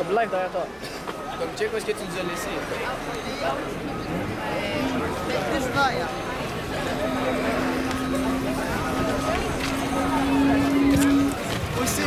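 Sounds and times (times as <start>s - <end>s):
crowd talking over one another: 0.0s - 12.0s
steady low held tone: 4.5s - 11.6s.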